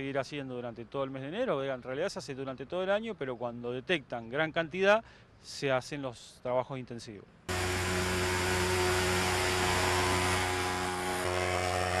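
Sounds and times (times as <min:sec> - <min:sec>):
fogging machine droning: 0:07.5 - 0:12.0.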